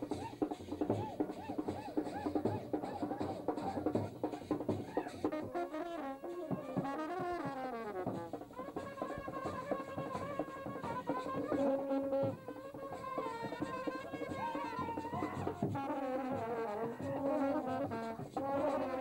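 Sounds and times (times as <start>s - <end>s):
drums beating: 0.0s - 19.0s
trumpets and trombones melody: 5.0s - 19.0s.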